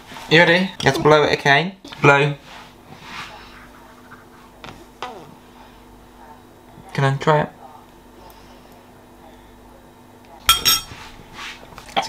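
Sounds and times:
faint steady hum: 0:00.0 - 0:12.0
spoon clinking on ceramic bowl: 0:10.5 - 0:10.9.

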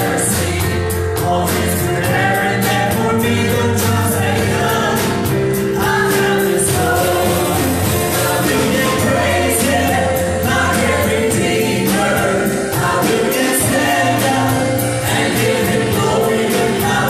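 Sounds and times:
drum kit beat: 0:00.0 - 0:17.0
keyboard: 0:00.0 - 0:17.0
women singing together: 0:00.0 - 0:17.0.

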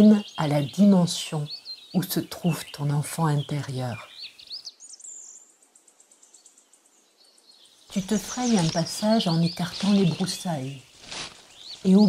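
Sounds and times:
songbirds whistling: 0:00.0 - 0:12.0.

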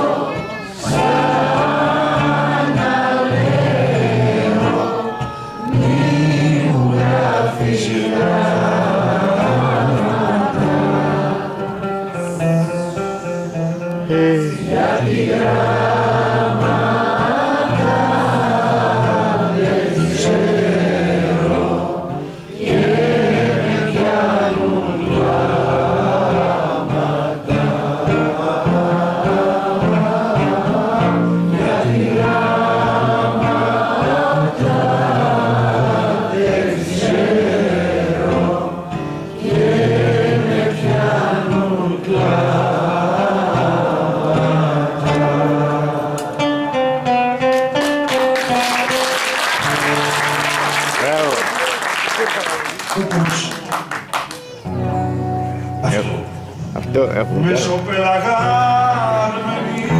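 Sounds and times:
voices singing together: 0:00.0 - 0:47.2, 0:57.4 - 0:59.9
strummed acoustic guitar: 0:00.0 - 0:49.0, 0:54.4 - 0:59.9.

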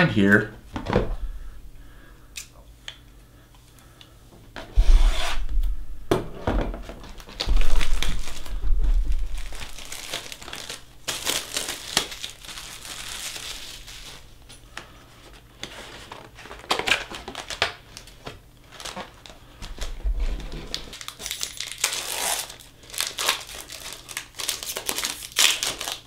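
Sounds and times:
deep handling thumps: 0:04.8 - 0:09.9
shrink wrap crinkling: 0:06.7 - 0:26.0.

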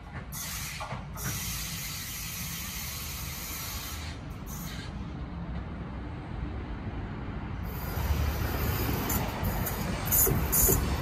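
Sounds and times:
electric locomotive rumbling: 0:00.0 - 0:11.0.

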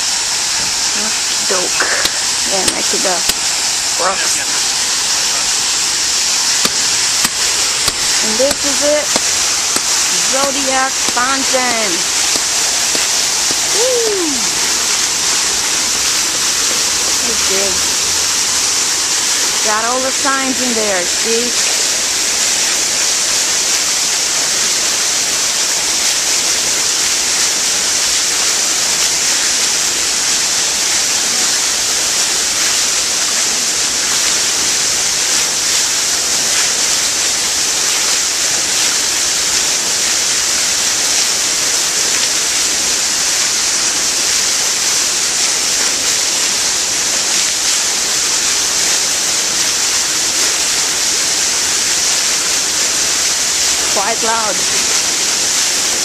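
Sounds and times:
fountain water splashing into pool: 0:00.0 - 0:56.0.

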